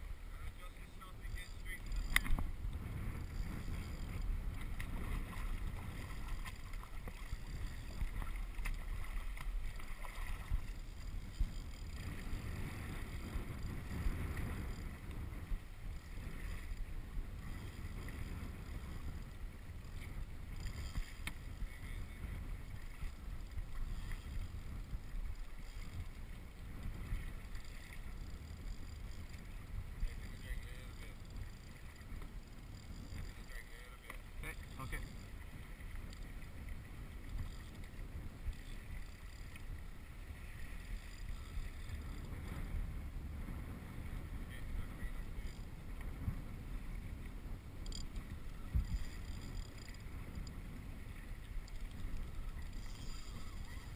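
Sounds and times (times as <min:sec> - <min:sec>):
paddle strokes: 0:00.0 - 0:53.9
wind on microphone: 0:00.0 - 0:53.9
water sloshing and splashing: 0:03.7 - 0:13.3.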